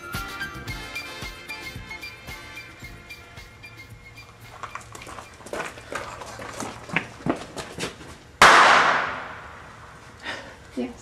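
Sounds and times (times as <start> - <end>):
firecracker bang: 8.4 - 9.7.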